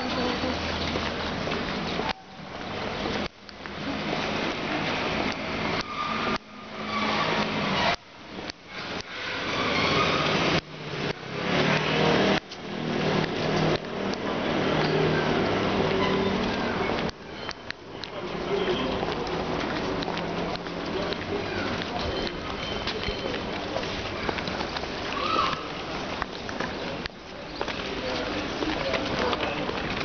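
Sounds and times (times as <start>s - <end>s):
road traffic on wet street: 0.0s - 30.0s.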